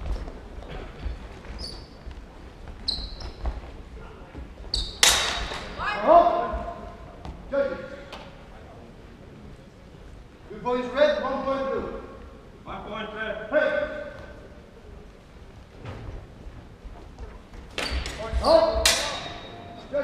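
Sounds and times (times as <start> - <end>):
swords clashing: 5.0 - 5.8, 18.8 - 19.8.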